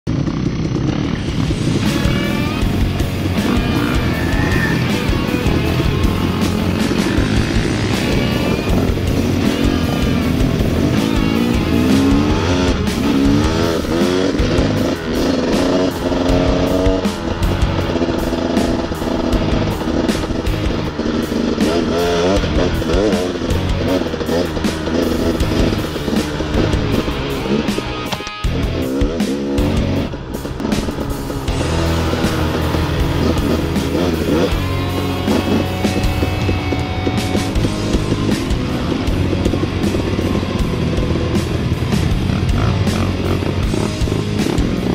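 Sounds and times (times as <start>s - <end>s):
dirt bike engine revving: 0.1s - 44.9s.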